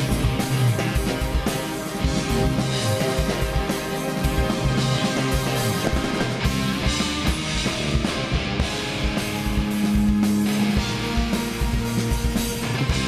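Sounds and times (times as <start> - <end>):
rock band playing live: 0.0 - 13.0.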